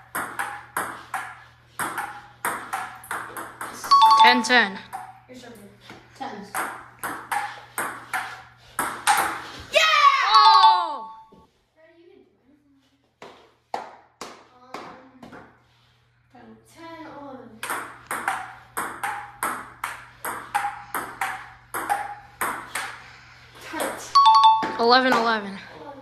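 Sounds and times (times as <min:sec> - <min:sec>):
ball pinging on table: 0:17.6 - 0:22.9, 0:24.2 - 0:25.3.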